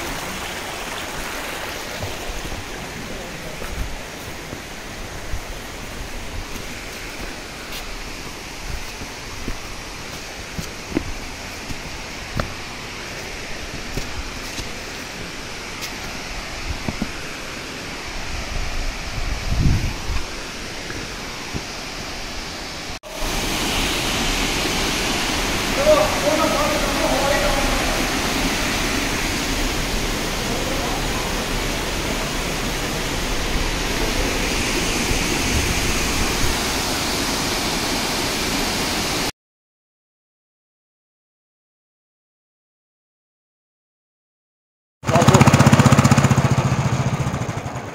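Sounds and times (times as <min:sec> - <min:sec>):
waterfall pouring: 0:00.0 - 0:03.8, 0:23.0 - 0:39.3.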